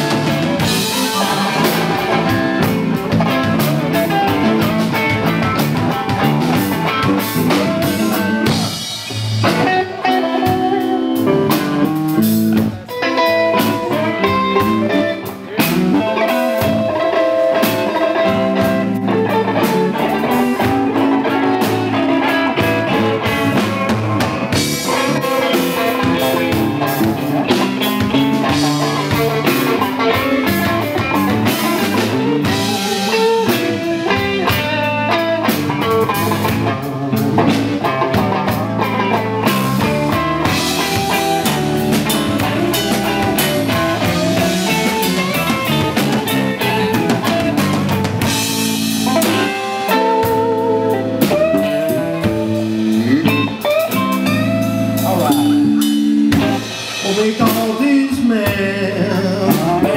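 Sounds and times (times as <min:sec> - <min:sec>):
blues band playing: 0:00.0 - 0:59.9
electric guitar lead: 0:00.0 - 0:59.9.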